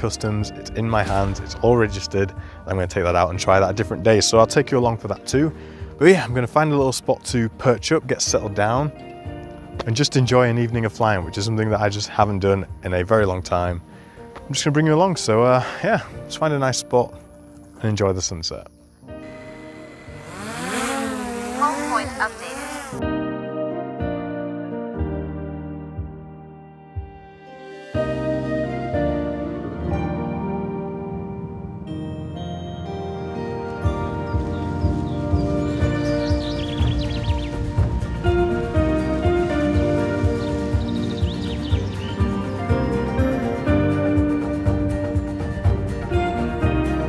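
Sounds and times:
soft background music: 0.0s - 47.0s
sustained synth chords: 19.1s - 23.0s
motor-like whine: 19.2s - 23.0s.

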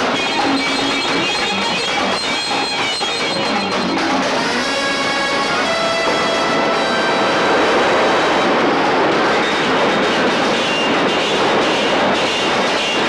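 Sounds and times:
underground train rushing past: 0.0s - 13.0s.

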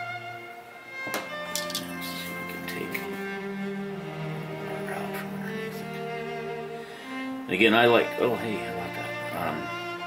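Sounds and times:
bowed strings music: 0.0s - 10.0s.

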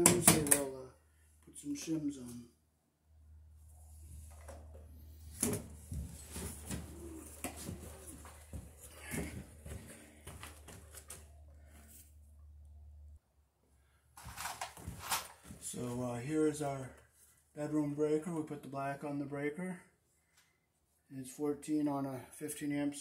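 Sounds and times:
rustling: 4.0s - 12.2s, 14.2s - 15.8s
footsteps on debris: 14.2s - 15.6s.

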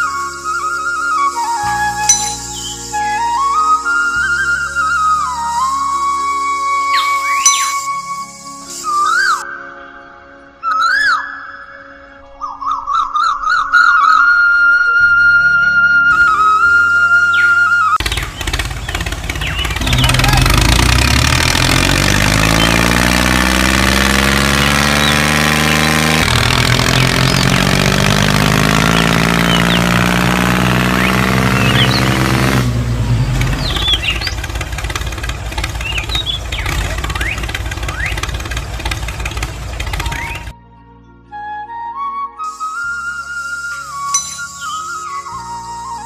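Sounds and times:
tractor engine revving: 1.9s - 3.0s, 17.8s - 40.5s
short high chirps: 2.1s - 2.8s, 7.2s - 8.0s, 44.1s - 44.9s.

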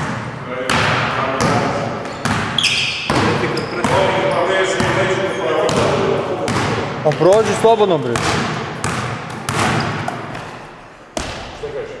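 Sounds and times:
basketball striking with echo: 0.0s - 11.7s.

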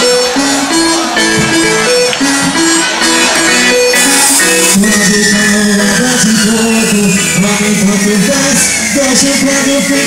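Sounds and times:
amplified live band music: 0.0s - 10.0s.

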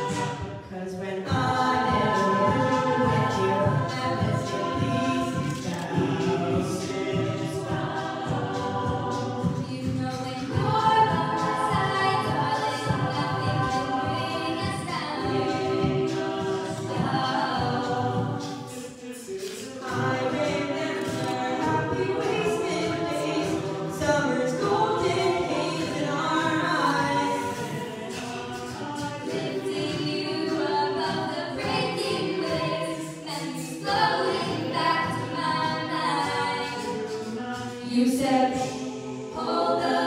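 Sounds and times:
a cappella group singing: 0.0s - 40.0s.

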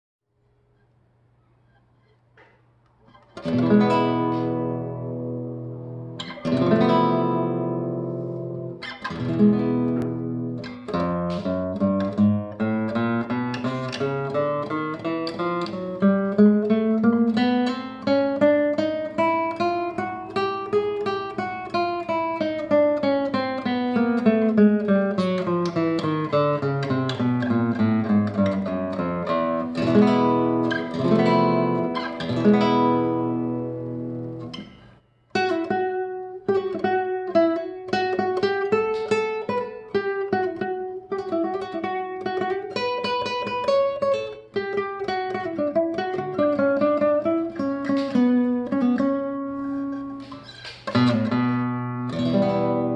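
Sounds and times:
classical guitar picking: 1.6s - 52.9s.

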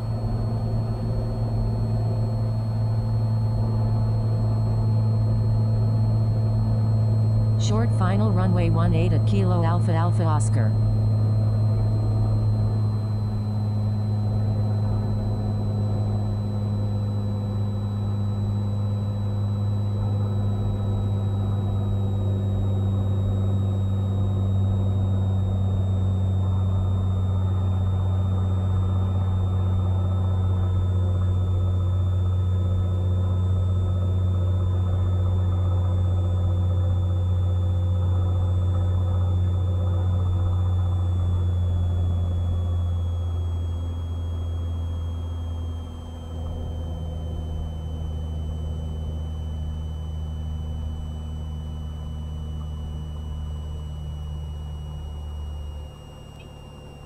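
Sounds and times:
propeller plane engine droning: 0.0s - 57.0s.

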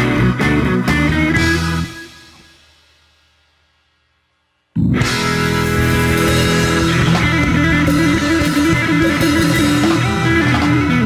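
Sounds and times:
blues-rock band with electric guitar: 0.0s - 2.6s, 4.8s - 11.0s.

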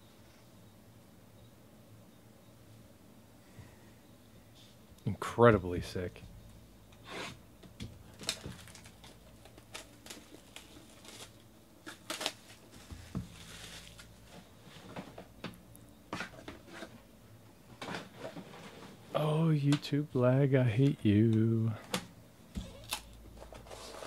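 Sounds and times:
box sliding rustle: 23.4s - 24.0s.

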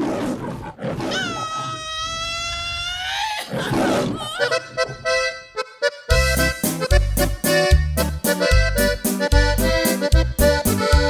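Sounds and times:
lion roar: 0.0s - 5.1s.

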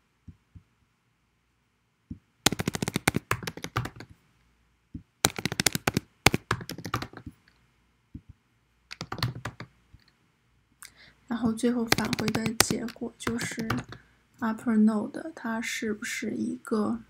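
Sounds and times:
typing on computer keyboard: 2.5s - 4.1s, 5.2s - 7.3s, 8.9s - 9.7s, 11.8s - 14.0s.

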